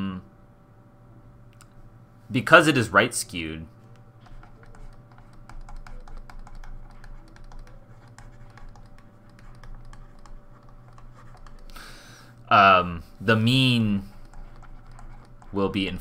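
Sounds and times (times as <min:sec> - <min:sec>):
faint steady hum: 0:00.0 - 0:16.0
stylus tapping on tablet: 0:04.0 - 0:11.9, 0:14.1 - 0:15.6.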